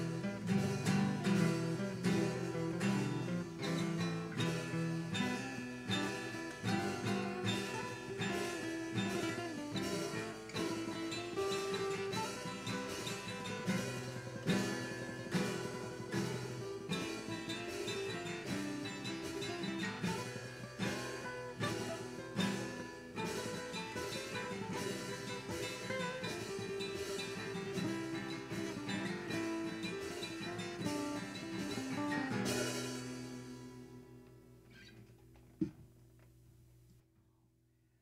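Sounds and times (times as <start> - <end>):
acoustic guitar strumming chords: 0.0 - 34.9.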